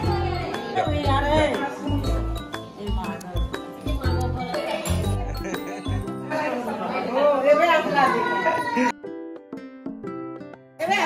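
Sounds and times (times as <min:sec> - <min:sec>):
people talking at once: 0:00.0 - 0:09.0
background music: 0:00.0 - 0:11.0.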